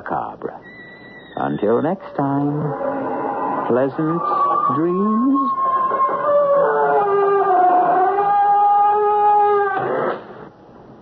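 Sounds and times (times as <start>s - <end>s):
eerie held tones: 0.6s - 9.9s.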